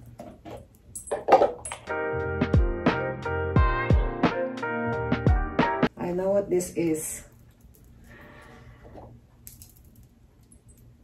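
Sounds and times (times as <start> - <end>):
light clicks of pearls and metal: 9.4 - 11.0.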